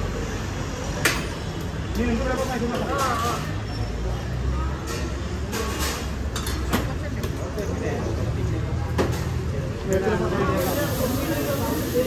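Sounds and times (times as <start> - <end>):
indistinct customer voices: 0.0 - 12.0.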